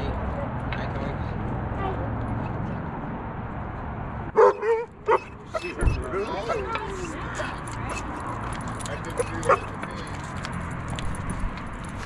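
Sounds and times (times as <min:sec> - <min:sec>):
outdoor background noise: 0:00.0 - 0:12.0
dog whining: 0:04.4 - 0:08.1
collar tags jingling: 0:04.4 - 0:12.0
faint voices: 0:05.4 - 0:10.4.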